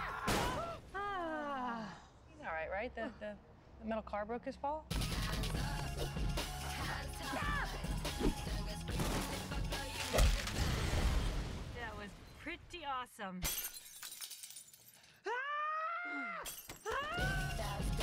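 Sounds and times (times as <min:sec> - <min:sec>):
trailer music: 0:04.9 - 0:11.5.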